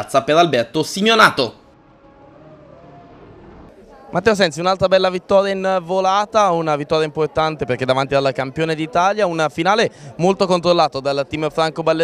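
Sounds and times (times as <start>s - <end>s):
low even rumble: 1.6s - 4.1s
faint wavering tones: 1.6s - 4.2s.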